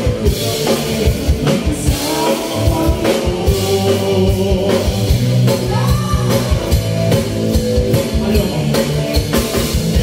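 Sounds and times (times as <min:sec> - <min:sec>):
bass guitar: 0:00.0 - 0:10.0
drum kit beat: 0:00.0 - 0:10.0
electric guitar: 0:00.0 - 0:10.0.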